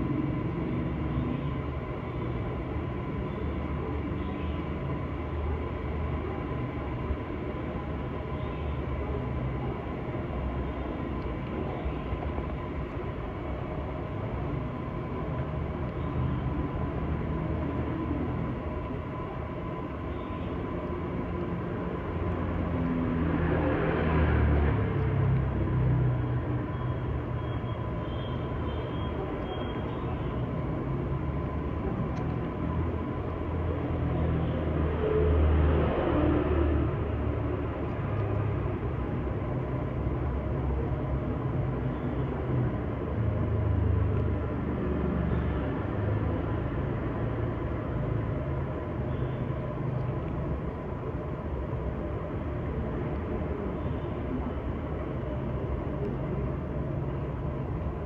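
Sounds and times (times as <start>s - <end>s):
faint constant high tone: 0.0s - 23.8s, 24.5s - 58.0s
low rumbling background noise: 0.0s - 58.0s.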